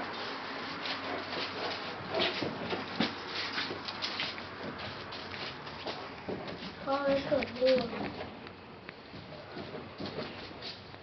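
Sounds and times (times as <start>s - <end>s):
faint scuffling: 0.1s - 8.4s.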